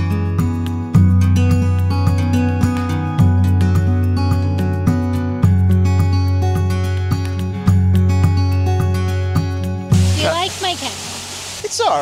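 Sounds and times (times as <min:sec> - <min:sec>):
water rushing in a cascade: 0:09.9 - 0:12.0
voices: 0:10.0 - 0:12.0.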